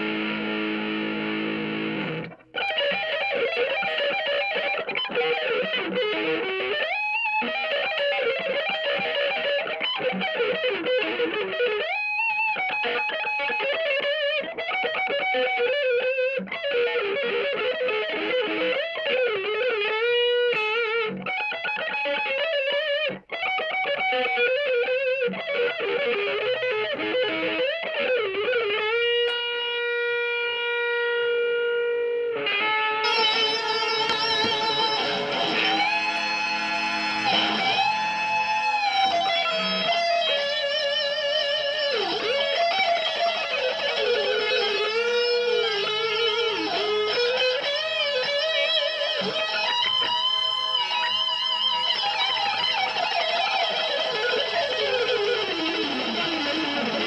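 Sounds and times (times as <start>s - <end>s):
electric guitar lead line: 0.0s - 57.0s.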